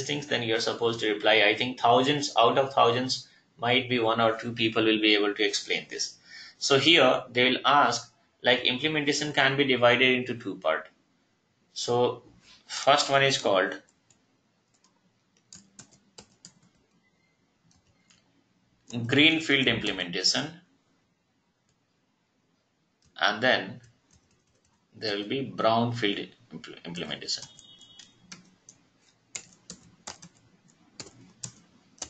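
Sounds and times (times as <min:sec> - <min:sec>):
keyboard typing: 0:13.8 - 0:17.1, 0:17.7 - 0:19.0, 0:23.8 - 0:24.9, 0:26.9 - 0:32.0.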